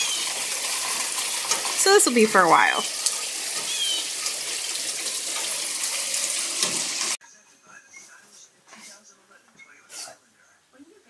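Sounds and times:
heavy rain pouring: 0:00.0 - 0:07.2.

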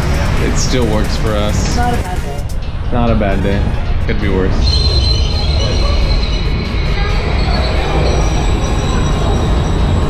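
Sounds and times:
train wheels rumbling on rails: 0:03.7 - 0:10.0
high-pitched wheel squeal: 0:04.6 - 0:10.0.

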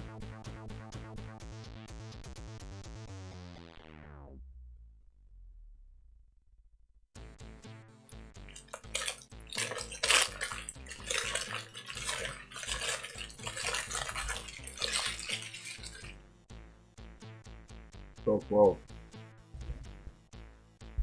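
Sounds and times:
paper wrapper crumpling: 0:08.5 - 0:16.1.

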